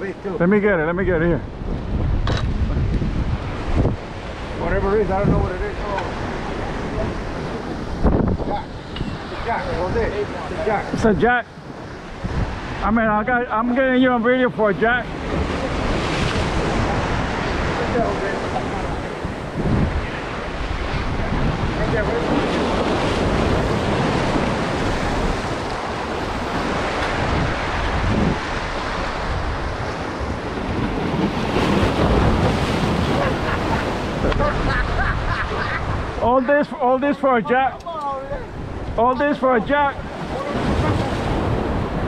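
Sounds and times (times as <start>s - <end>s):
waves breaking on rocks: 0.0s - 42.0s
wind buffeting microphone: 0.0s - 42.0s.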